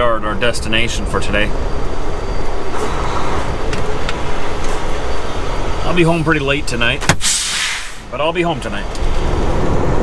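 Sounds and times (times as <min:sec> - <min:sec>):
diesel truck engine rumble: 0:00.0 - 0:10.0.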